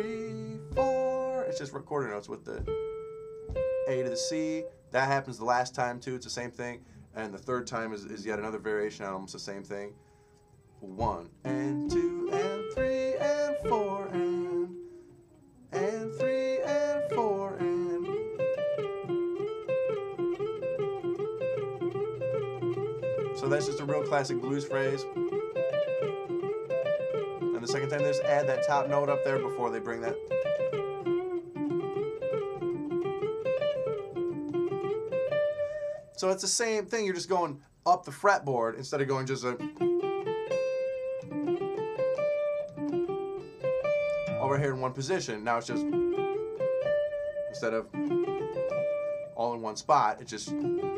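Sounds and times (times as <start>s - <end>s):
electric guitar blues phrase: 0.0s - 10.2s, 10.8s - 50.9s.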